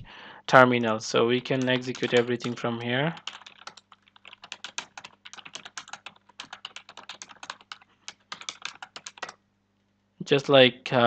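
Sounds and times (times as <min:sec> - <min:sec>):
fast typing on keyboard: 0:01.4 - 0:09.4.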